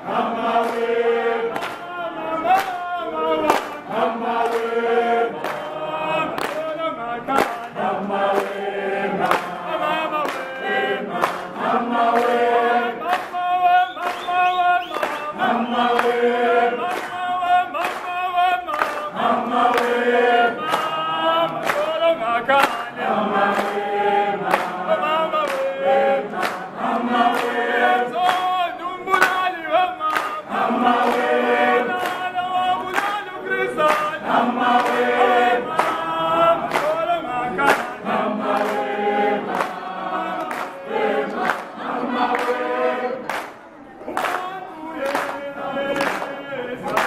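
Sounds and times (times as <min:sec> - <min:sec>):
group of people singing: 0:00.0 - 0:47.0
handclaps keeping time: 0:00.0 - 0:47.0.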